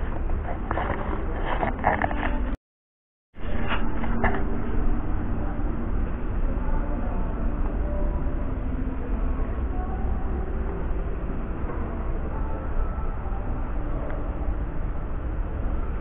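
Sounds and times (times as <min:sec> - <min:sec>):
low rumbling background noise: 0:00.0 - 0:02.6, 0:03.4 - 0:16.0.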